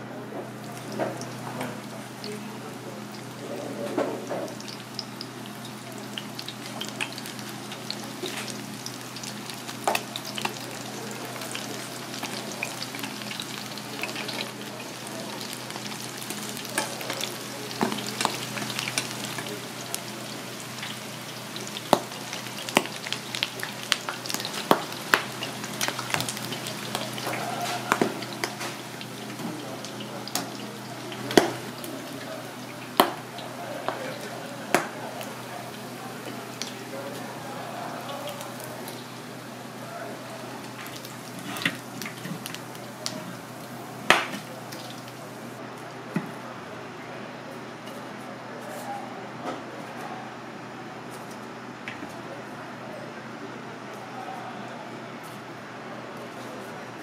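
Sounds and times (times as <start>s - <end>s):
food deep-frying in oil: 0.4s - 45.6s.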